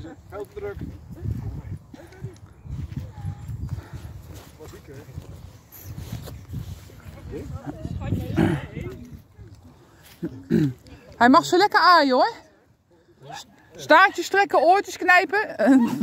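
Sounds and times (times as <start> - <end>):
indistinct voices of adults and children: 0.0 - 16.0.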